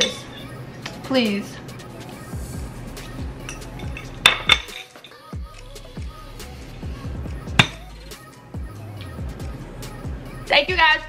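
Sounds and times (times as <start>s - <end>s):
music with low beat: 1.8s - 11.0s.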